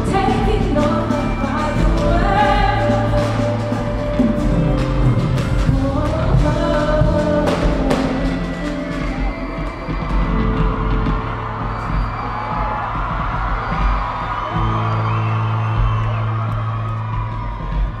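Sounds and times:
crowd cheering and whooping: 0.0 - 18.0
live synth music with deep bass: 0.0 - 18.0.

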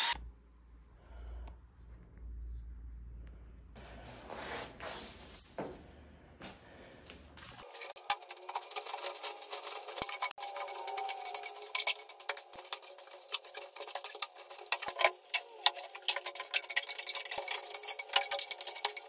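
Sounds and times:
brush sweeping wood chips: 7.6 - 15.4.

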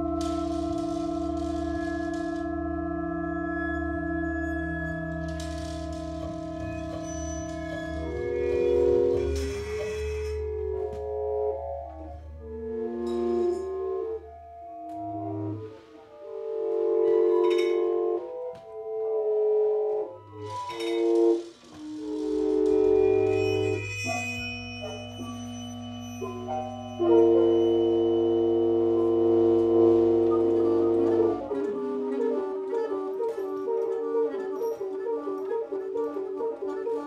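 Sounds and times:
double bass bowed in long tones: 0.0 - 37.0
held ensemble pitches: 0.0 - 37.0.

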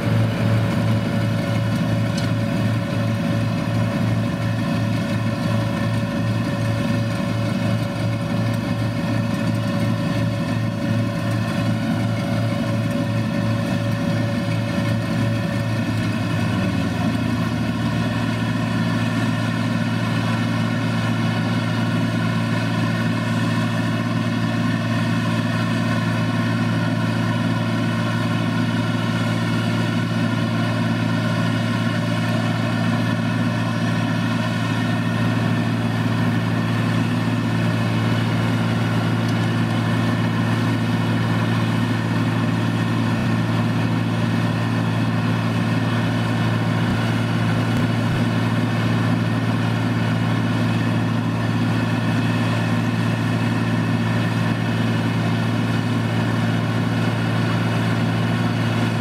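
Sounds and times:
combine harvester running: 0.0 - 59.0
tractor engine running: 0.0 - 59.0.

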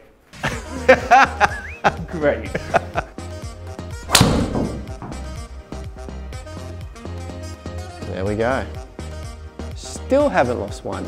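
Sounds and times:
background music: 0.1 - 11.0
golf club striking ball: 4.1 - 5.6.

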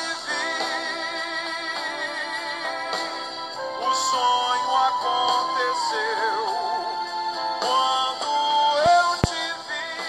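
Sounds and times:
pop ballad singing: 0.0 - 10.0.

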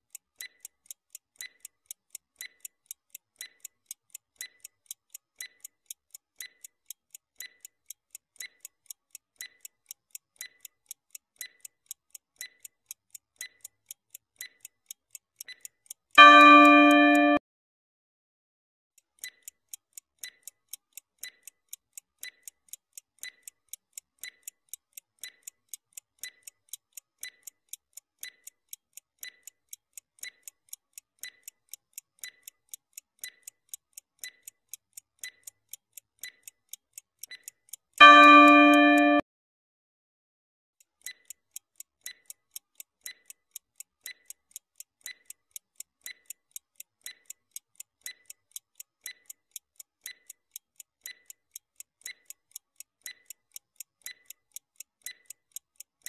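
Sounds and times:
clock ticking: 0.0 - 17.4, 19.0 - 39.2, 40.8 - 56.0
bell-like chime: 16.2 - 17.4, 38.0 - 39.2.

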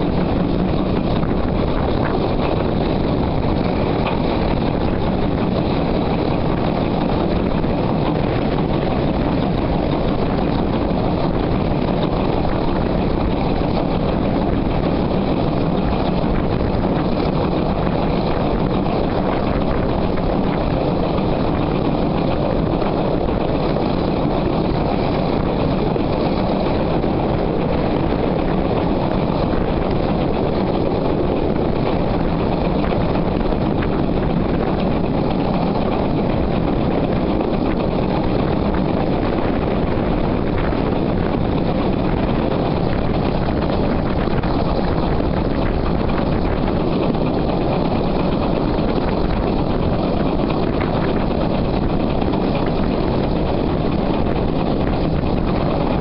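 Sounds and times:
low hum: 0.0 - 56.0
train running noise: 0.0 - 56.0
wheels on rails: 0.0 - 56.0
wind: 0.0 - 56.0.

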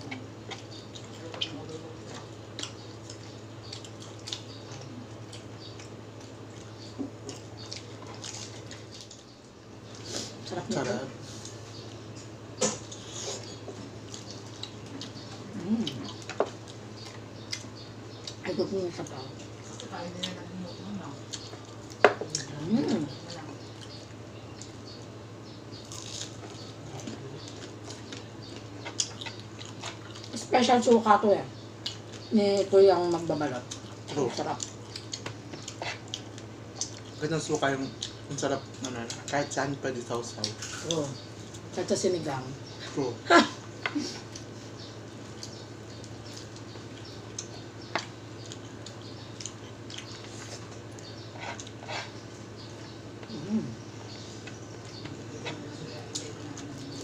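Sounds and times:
low steady hum: 0.0 - 57.0
chewing and wet mouth clicks: 0.1 - 9.5, 12.6 - 18.5, 25.7 - 30.4, 31.8 - 32.7, 33.6 - 37.2, 40.4 - 41.6, 45.3 - 53.4, 54.4 - 57.0.

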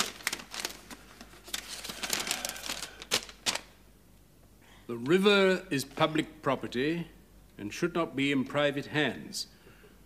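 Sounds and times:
paper rustling and crackling: 0.0 - 3.7.

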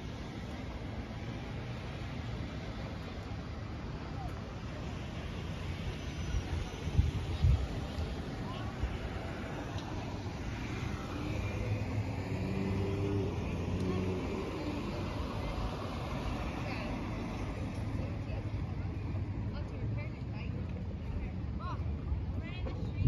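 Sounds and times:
cars driving past: 4.6 - 20.2.

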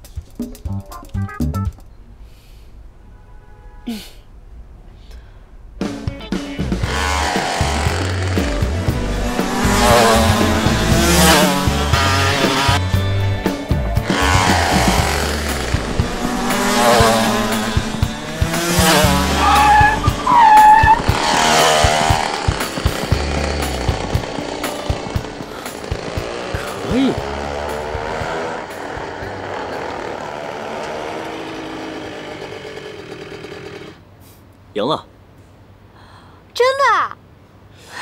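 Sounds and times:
background music with low beat: 0.0 - 1.9, 5.8 - 29.4
go-karts racing past: 6.7 - 13.0, 14.0 - 34.0
tyre squeal: 18.6 - 23.6.

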